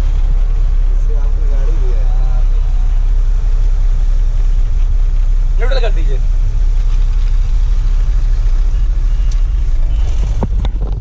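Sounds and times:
truck engine rumbling: 0.0 - 11.0.

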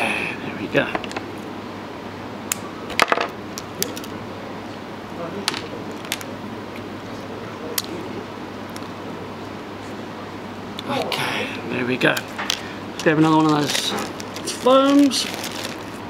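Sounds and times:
room tone: 0.0 - 16.0.

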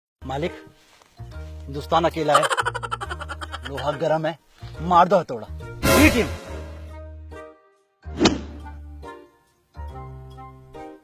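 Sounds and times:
background music with low bass: 0.2 - 11.0
loud thump: 8.2 - 8.6.

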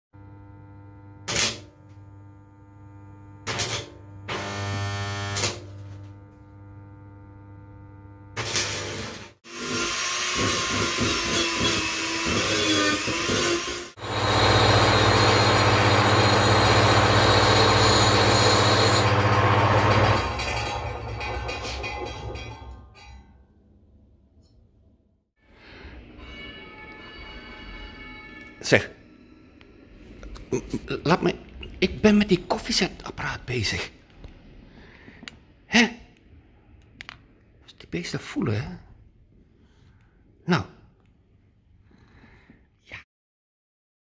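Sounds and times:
rotary tool grinding metal: 8.4 - 21.7.

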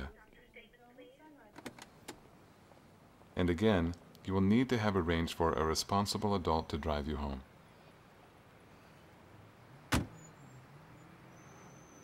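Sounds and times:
car door shutting: 9.9 - 10.2.

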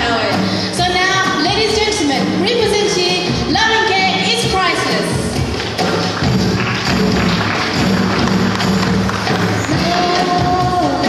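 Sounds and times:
live band music: 0.0 - 11.0
tambourine-like percussion: 4.4 - 11.0.

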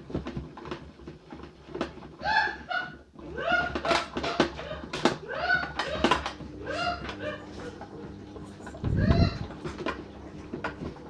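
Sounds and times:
toy washing machine motor hum: 0.0 - 11.0.

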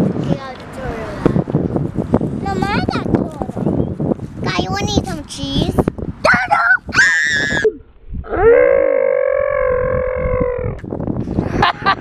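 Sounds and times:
girl squealing and singing: 6.3 - 8.9.

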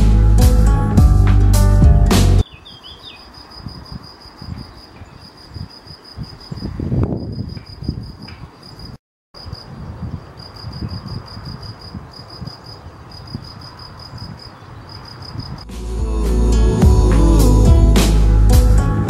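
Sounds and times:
crickets chirping: 2.4 - 15.7.

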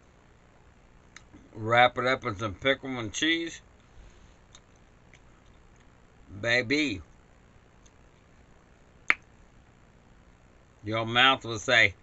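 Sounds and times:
mouth click lip smack: 9.1 - 9.3.

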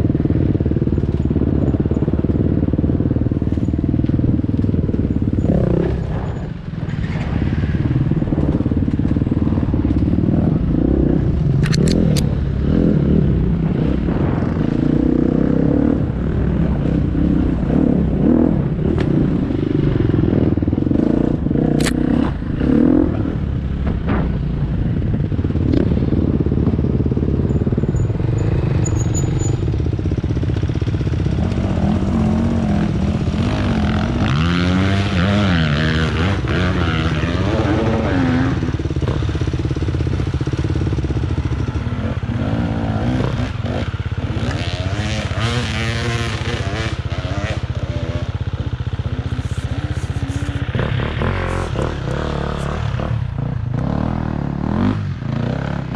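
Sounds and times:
dirt bike engines revving: 0.0 - 55.9.

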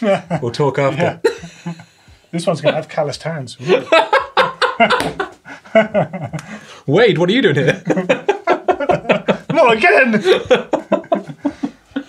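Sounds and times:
men laughing: 0.0 - 2.9, 3.6 - 6.7, 7.4 - 12.0.

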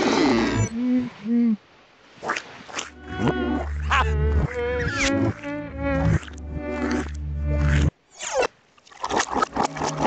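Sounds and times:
buzzy nasal cartoon voice: 3.0 - 7.9.

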